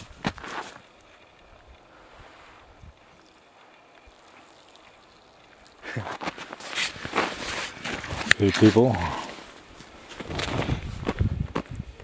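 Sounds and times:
footsteps crunching in snow: 0.0 - 1.3, 5.9 - 11.8.

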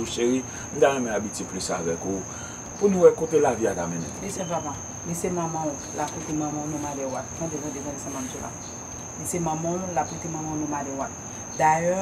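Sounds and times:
high-pitched insect trill: 0.0 - 12.0
woman talking: 4.2 - 8.6, 9.2 - 12.0.

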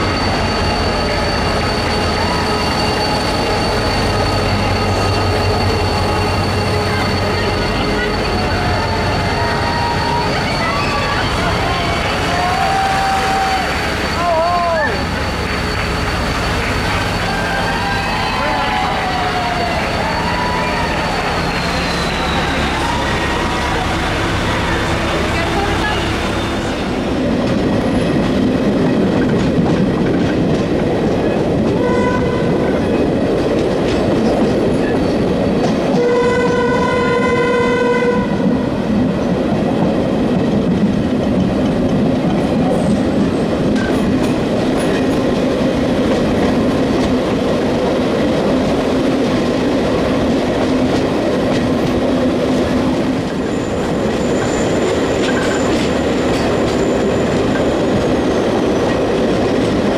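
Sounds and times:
high wheel squeal: 0.0 - 28.6, 52.8 - 59.4
train wheels running on rails: 0.0 - 59.9
train horn: 31.7 - 32.8, 35.9 - 38.6.

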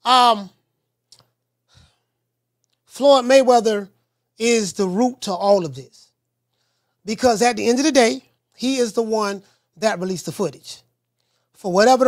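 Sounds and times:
faint mouth click: 1.1 - 1.4
man's soft breath: 1.6 - 2.2, 6.5 - 7.0.

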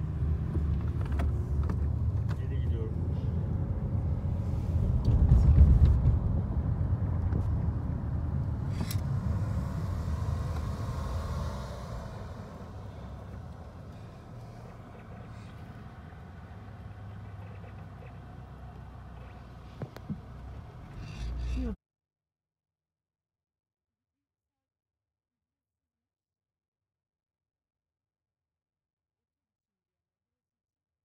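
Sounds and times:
moving car rumble: 0.0 - 21.8.

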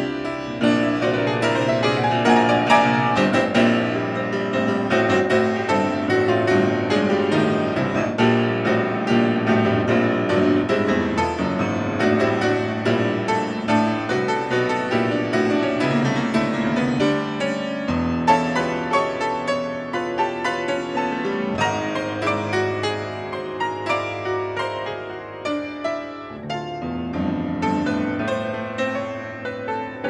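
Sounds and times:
fast piano passage: 0.0 - 30.0.

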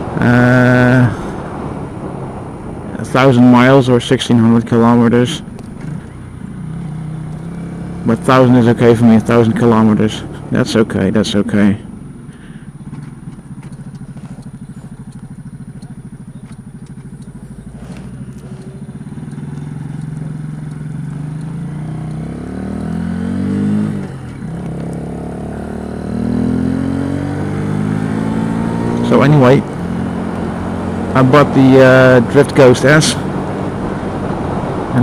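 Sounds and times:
motorcycle engine while riding: 0.0 - 35.0.

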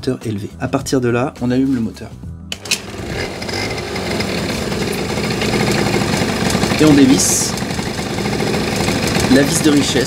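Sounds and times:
scooter engine starting and idling: 2.5 - 10.0.

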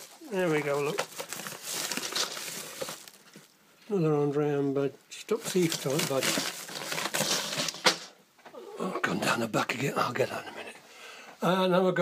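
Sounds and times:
plastic bag crinkling: 0.0 - 3.6, 5.3 - 8.1.

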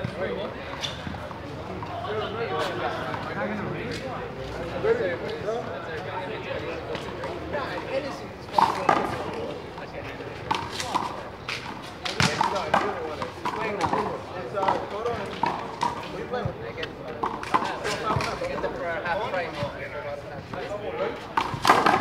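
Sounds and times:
players talking: 0.0 - 22.0.

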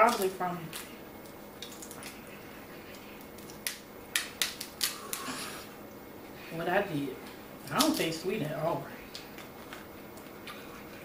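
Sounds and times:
crab shells cracking: 0.0 - 2.3, 2.9 - 5.3.

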